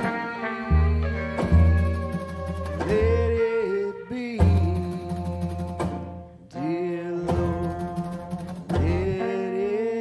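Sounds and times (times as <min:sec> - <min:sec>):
man singing a hymn: 0:02.8 - 0:10.0.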